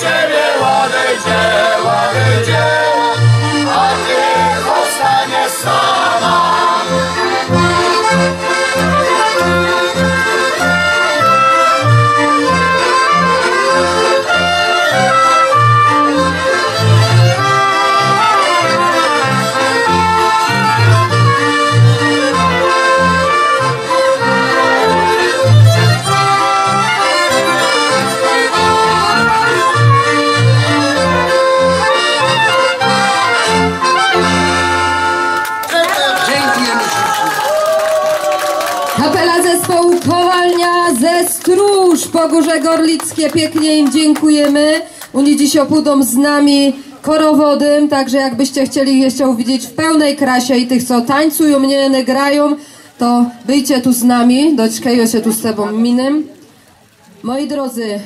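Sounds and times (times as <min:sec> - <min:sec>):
double bass: 0:00.0 - 0:35.4
violins: 0:00.0 - 0:37.1
accordion: 0:00.0 - 0:37.2, 0:38.9 - 0:58.0
trumpet: 0:00.0 - 0:37.2
clarinet: 0:00.0 - 0:39.4.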